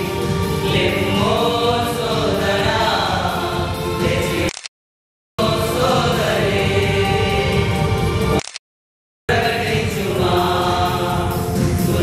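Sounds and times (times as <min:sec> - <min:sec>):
group of men singing: 0:00.0 - 0:04.5, 0:05.4 - 0:08.0, 0:09.3 - 0:12.0.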